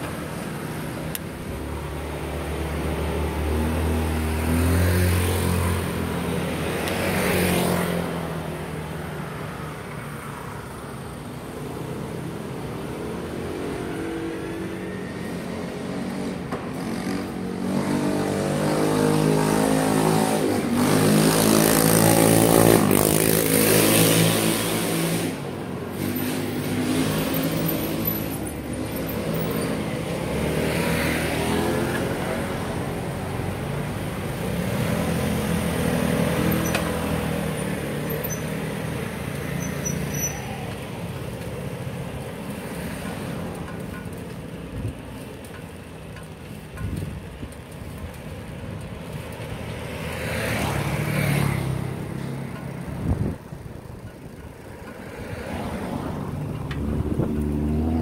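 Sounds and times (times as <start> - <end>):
vehicles passing on street: 0.0 - 58.0.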